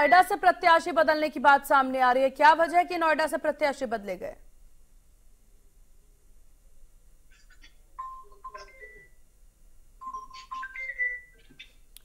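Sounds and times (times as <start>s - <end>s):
electronic ringtone melody: 8.0s - 9.2s, 10.0s - 11.4s.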